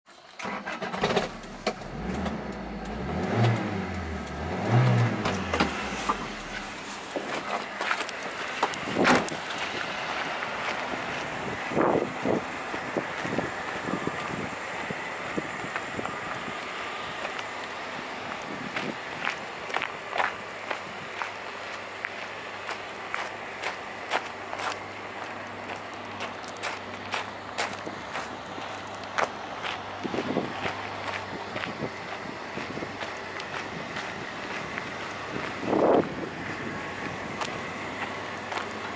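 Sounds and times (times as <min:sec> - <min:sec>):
outdoor noise: 0:00.0 - 0:38.9
van engine starting and revving: 0:00.2 - 0:20.8, 0:30.0 - 0:38.9
footsteps on gravel: 0:01.8 - 0:38.9.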